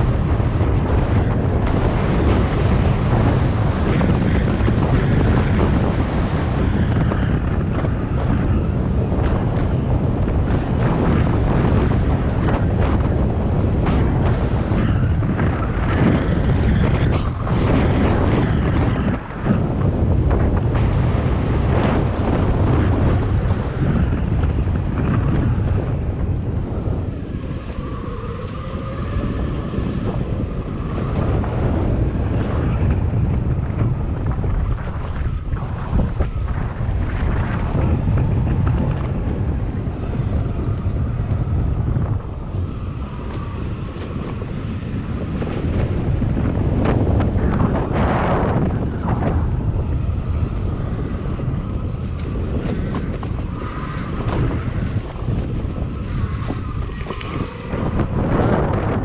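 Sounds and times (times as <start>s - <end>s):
wheels rolling on dirt trail: 0.0s - 59.0s
wind buffeting microphone: 0.0s - 59.0s.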